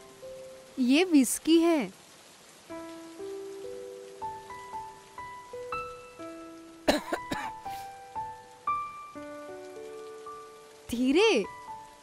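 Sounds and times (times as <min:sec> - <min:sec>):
slow sustained background music: 0:00.0 - 0:00.9, 0:02.3 - 0:12.0
man coughing: 0:06.9 - 0:07.6.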